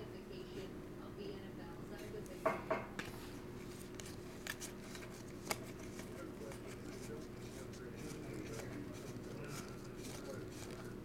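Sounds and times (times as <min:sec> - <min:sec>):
faint low hum: 0:00.0 - 0:11.0
cards sliding and clicking: 0:03.6 - 0:11.0.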